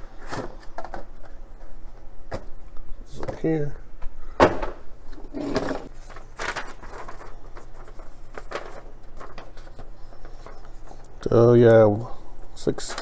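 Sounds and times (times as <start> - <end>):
paper rustling and crinkling: 5.4 - 11.1.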